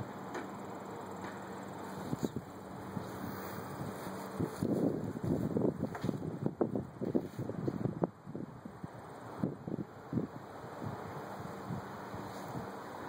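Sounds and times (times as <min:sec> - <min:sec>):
wind buffeting microphone: 0:02.0 - 0:13.0.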